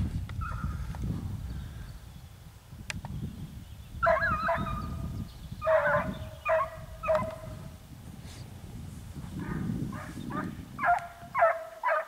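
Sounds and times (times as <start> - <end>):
hounds baying: 4.0 - 5.0, 5.6 - 7.6, 9.4 - 12.0.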